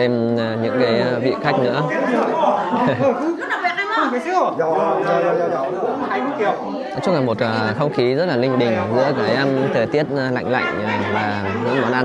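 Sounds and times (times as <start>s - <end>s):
people chatting: 0.0s - 12.0s.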